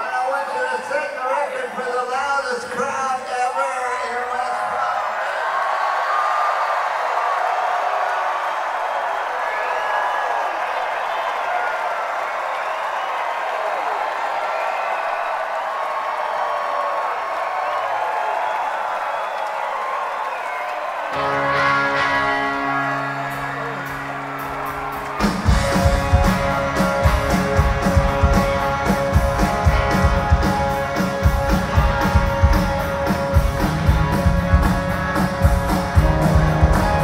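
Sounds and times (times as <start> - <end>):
crowd cheering and whooping: 3.6 - 37.0
rock band playing held notes: 21.1 - 37.0.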